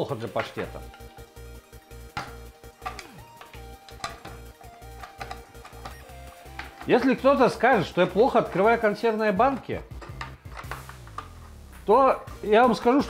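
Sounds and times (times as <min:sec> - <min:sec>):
background music with low beat: 0:00.0 - 0:13.0
can opener clicking on tin: 0:09.6 - 0:11.4.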